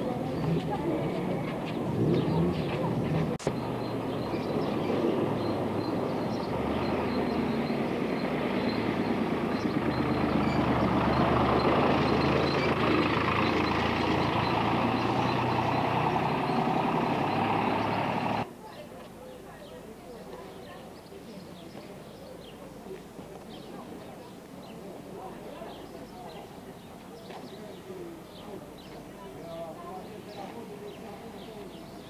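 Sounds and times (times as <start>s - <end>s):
vehicle engine: 0.0s - 18.5s.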